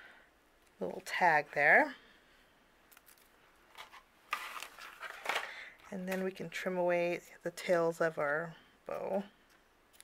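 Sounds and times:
paper scraping and rustling: 3.7s - 5.5s.

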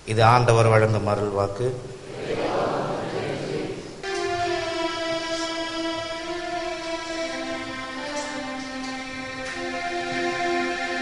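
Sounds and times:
low keyboard note: 4.0s - 8.7s
sustained keyboard chord: 4.0s - 11.0s.

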